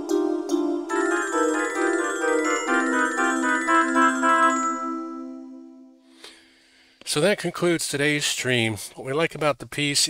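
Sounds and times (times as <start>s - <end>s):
bright bell-like high tones: 0.0s - 6.0s
fuller chords: 0.0s - 6.1s.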